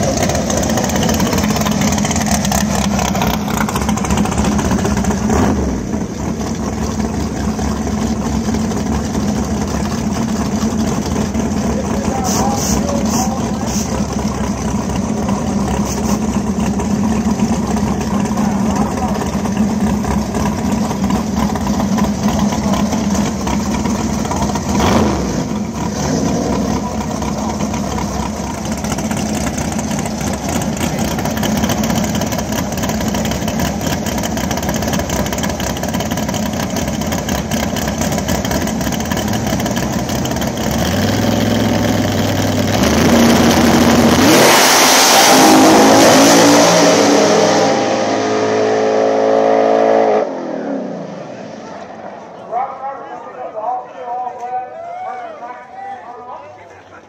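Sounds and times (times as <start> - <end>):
drag car engines revving: 0.0 - 54.8.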